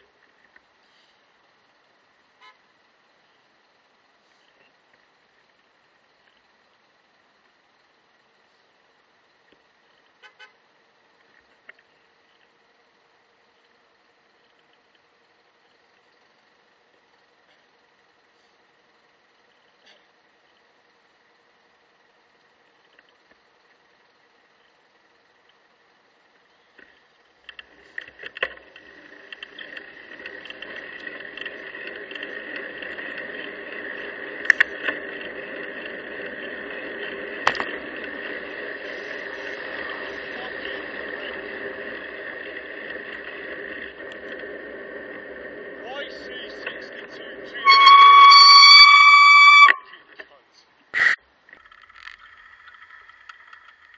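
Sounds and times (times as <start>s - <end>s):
faint steady hum: 0.0s - 53.9s
wind and road noise: 26.8s - 47.7s.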